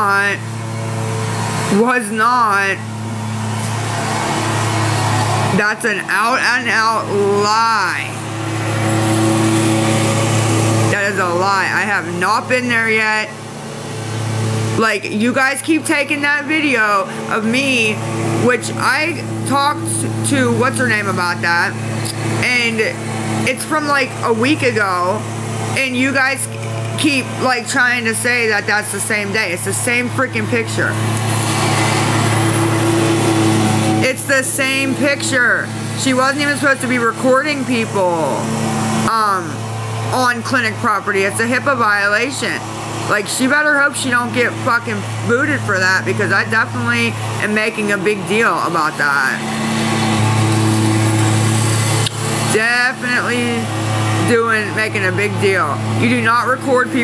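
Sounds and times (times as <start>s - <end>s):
low machine hum with hiss: 0.0s - 57.0s.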